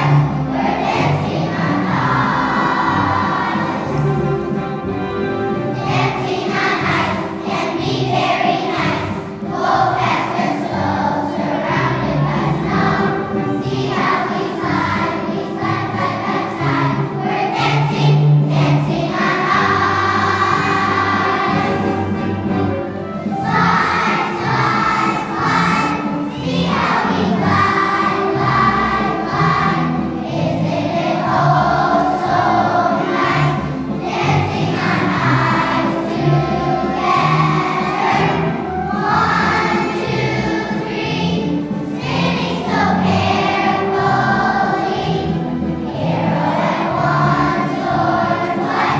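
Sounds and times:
children's choir singing: 0:00.0 - 0:48.9.

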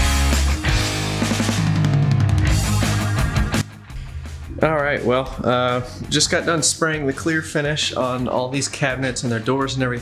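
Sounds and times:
background music with drums and bass: 0:00.0 - 0:10.0.

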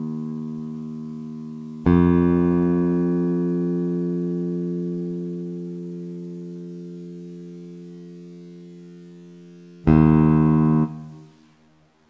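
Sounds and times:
bass guitar note: 0:00.0 - 0:07.4, 0:09.9 - 0:11.4.

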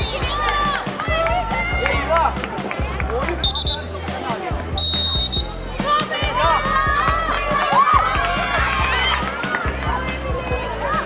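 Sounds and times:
background music: 0:00.0 - 0:11.0
referee's whistle blasts: 0:03.4 - 0:03.9, 0:04.8 - 0:05.6.

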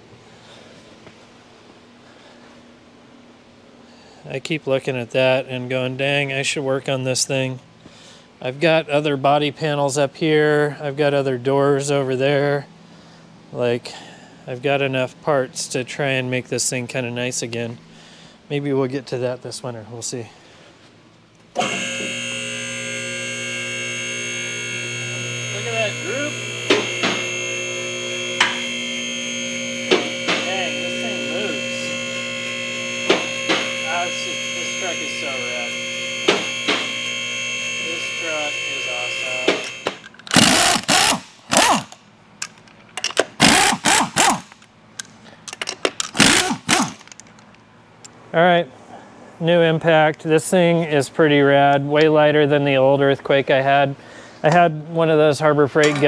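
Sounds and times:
lift pump motor running: 0:21.5 - 0:42.0, 0:43.4 - 0:44.7, 0:46.1 - 0:47.3
pneumatic impact wrench rattling: 0:21.6 - 0:37.4, 0:39.4 - 0:47.6.

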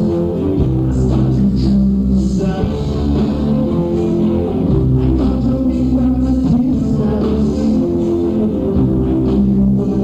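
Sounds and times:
bass guitar: 0:00.0 - 0:10.0
drums: 0:00.0 - 0:10.0.

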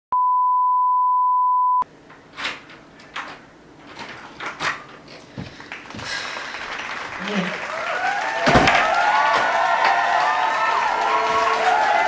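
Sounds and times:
steady test tone beep: 0:00.1 - 0:01.9.

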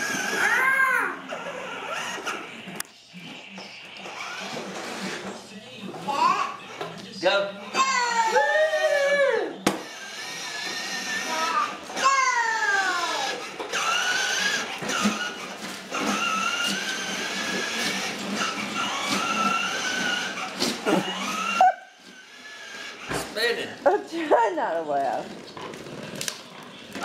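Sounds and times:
plastic toys rolling on wood floor: 0:00.0 - 0:07.2, 0:07.8 - 0:27.0.

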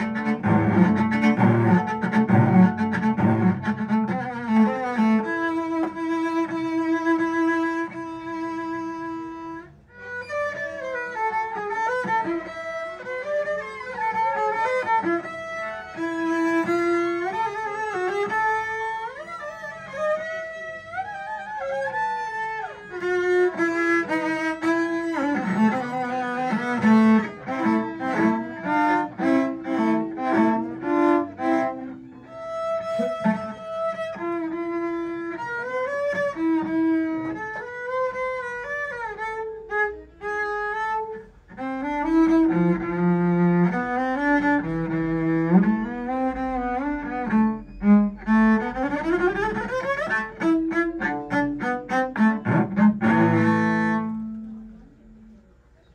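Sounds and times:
cello played with bow: 0:00.0 - 0:55.9.

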